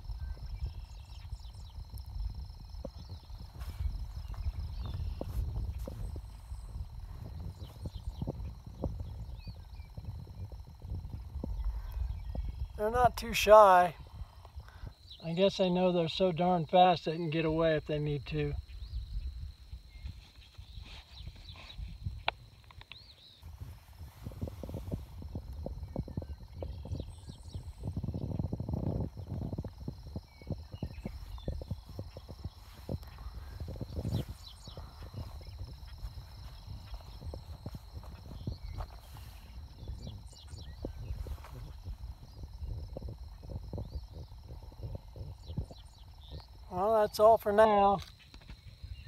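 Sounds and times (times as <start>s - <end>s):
wind rumble on microphone: 0.0s - 49.0s.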